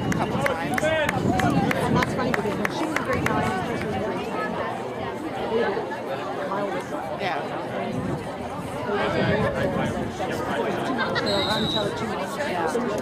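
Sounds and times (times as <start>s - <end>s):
people chatting: 0.0s - 13.0s.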